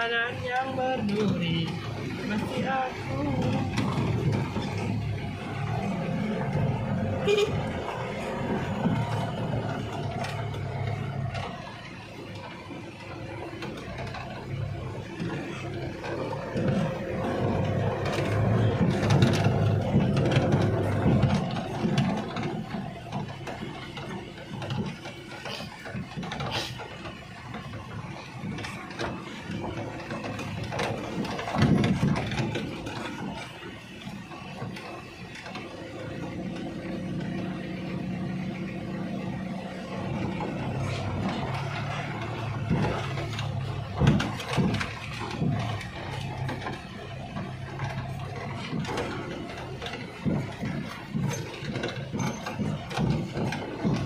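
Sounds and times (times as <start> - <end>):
cab rattles: 0.0 - 54.0
knocks over bumps: 0.0 - 54.0
pickup engine running: 0.0 - 54.0.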